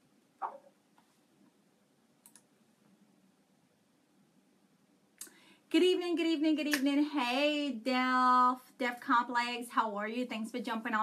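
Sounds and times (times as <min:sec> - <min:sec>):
faint quick clicks: 0:02.2 - 0:02.5.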